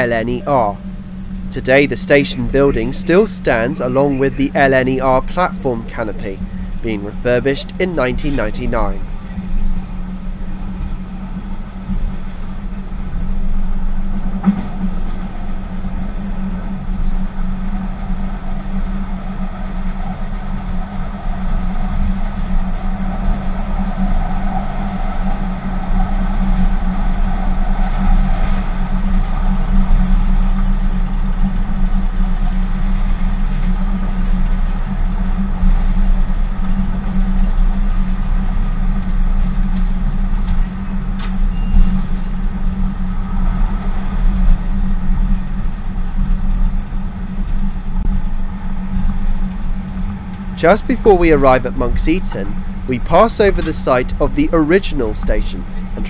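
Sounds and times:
train hum and wheel rumble: 0.0s - 50.6s.

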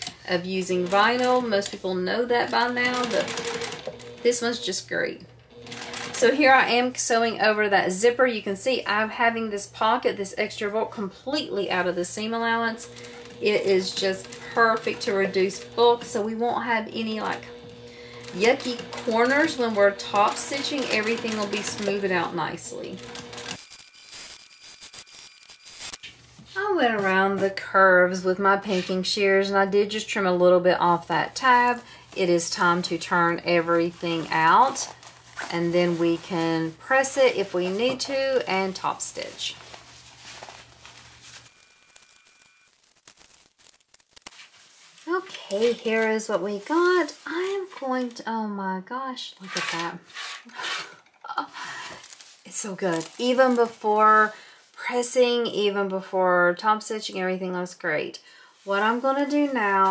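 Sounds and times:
sewing machine stitching: 0.0s - 4.8s, 5.4s - 6.8s, 12.5s - 23.9s.

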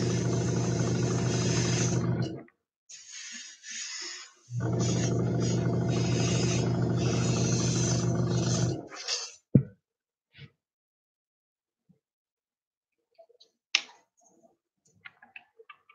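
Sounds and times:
airbrush compressor humming: 0.0s - 2.4s, 4.5s - 8.9s
short air hisses: 2.9s - 4.5s.

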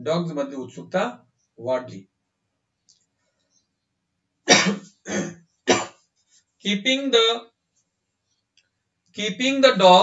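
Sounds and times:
man coughing: 4.5s - 6.0s.

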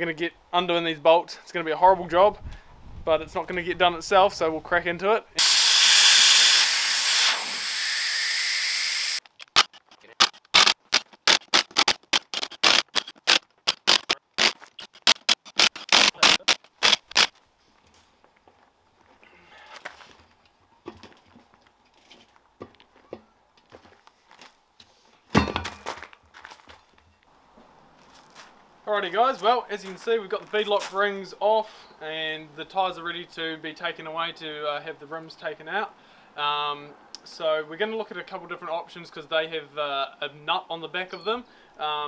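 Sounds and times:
air hissing out of tyre: 5.4s - 9.2s.

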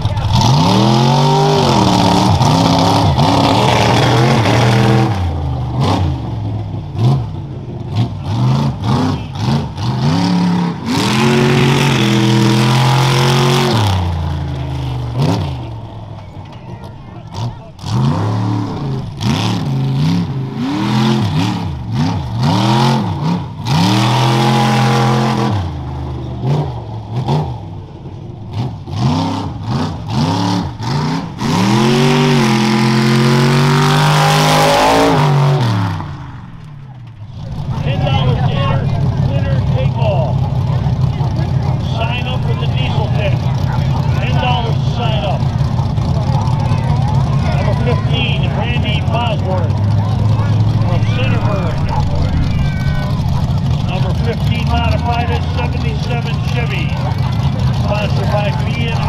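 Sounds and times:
truck engine revving: 0.0s - 59.0s.

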